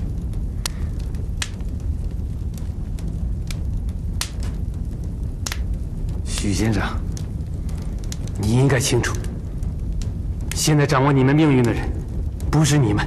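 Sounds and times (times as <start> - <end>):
low rumble: 0.0 - 13.0
sharp clicks: 5.4 - 5.8.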